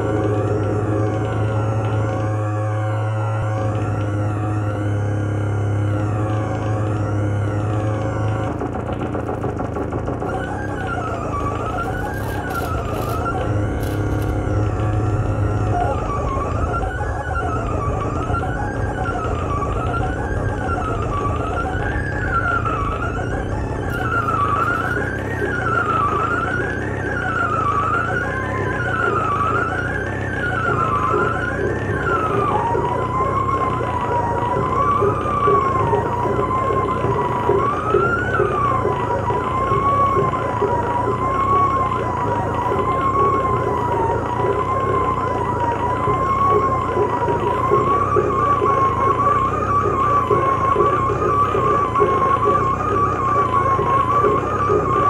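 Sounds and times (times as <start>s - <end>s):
electronic drone: 0.0s - 55.0s
siren-like electronic tones: 0.0s - 55.0s.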